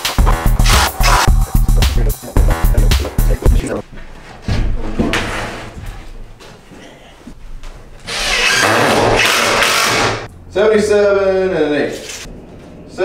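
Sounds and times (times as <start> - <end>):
steady rasping noise: 0.0 - 3.8.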